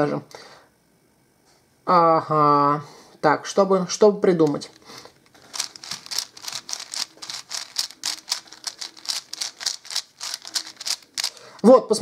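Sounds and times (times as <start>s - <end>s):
puzzle cube clicking: 4.4s - 11.6s.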